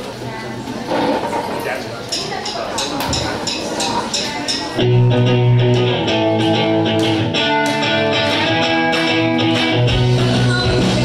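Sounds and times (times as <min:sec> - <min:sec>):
drums: 0:03.1 - 0:11.0
electric guitars strumming: 0:04.0 - 0:11.0.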